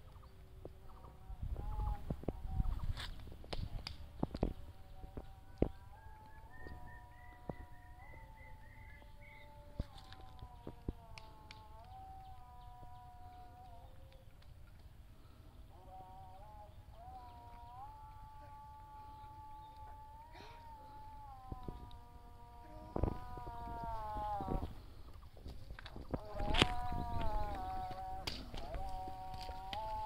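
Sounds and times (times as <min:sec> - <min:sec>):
voice holding long notes: 0:04.5 - 0:14.3, 0:15.6 - 0:25.2, 0:26.0 - 0:30.0.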